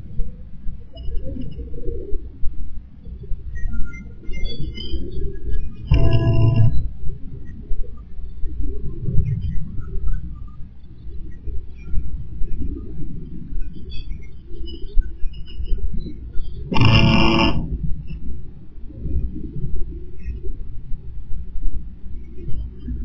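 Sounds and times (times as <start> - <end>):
continuous low rumble: 0.0 - 23.0
high-pitched squeal: 5.8 - 6.9, 16.6 - 17.8.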